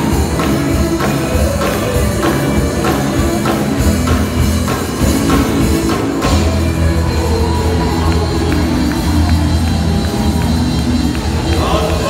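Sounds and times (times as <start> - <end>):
drum kit: 0.0 - 12.0
electric guitar: 0.0 - 12.0
heavy bass line: 0.0 - 12.0.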